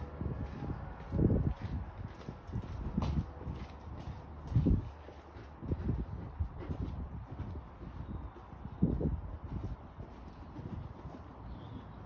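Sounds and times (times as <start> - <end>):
horse hooves on sand: 0.0 - 12.0.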